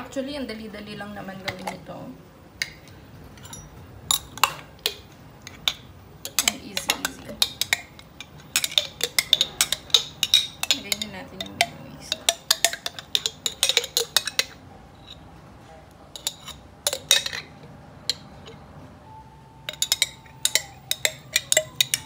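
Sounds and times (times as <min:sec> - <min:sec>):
metal spoon scraping jar: 0:03.4 - 0:15.3, 0:16.2 - 0:17.5, 0:19.7 - 0:22.0.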